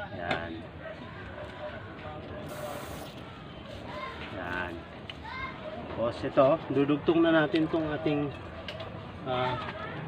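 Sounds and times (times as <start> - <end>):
torch flame hissing: 2.5 - 3.2.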